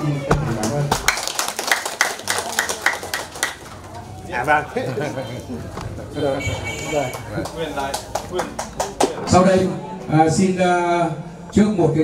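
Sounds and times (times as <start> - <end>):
small group applauding: 0.6 - 4.2, 6.8 - 9.2.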